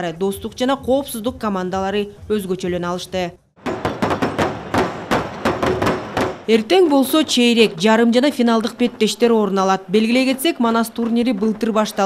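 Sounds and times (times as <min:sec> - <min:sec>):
barrel drums beaten with sticks: 0:03.6 - 0:06.5.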